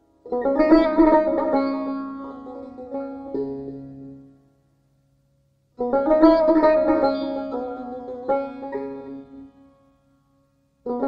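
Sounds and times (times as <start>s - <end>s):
plucked string instrument: 0.0s - 4.5s, 5.8s - 11.0s.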